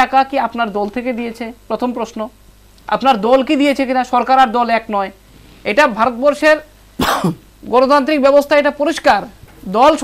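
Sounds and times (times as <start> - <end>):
man coughing: 7.0 - 7.4.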